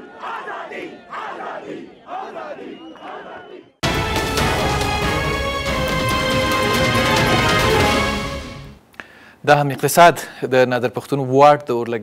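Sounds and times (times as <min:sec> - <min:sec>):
crowd chanting slogans: 0:00.0 - 0:03.8
theme music: 0:03.8 - 0:08.8.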